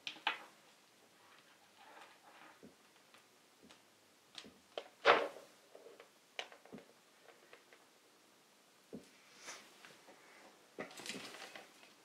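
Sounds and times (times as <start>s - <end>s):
earphones clicking and rustling: 10.8s - 12.0s.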